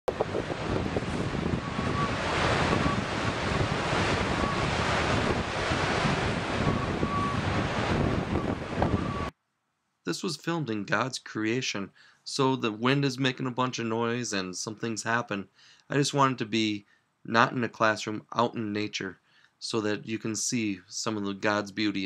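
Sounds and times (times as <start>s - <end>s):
wind buffeting microphone: 0.1s - 9.3s
breaking waves: 0.2s - 9.3s.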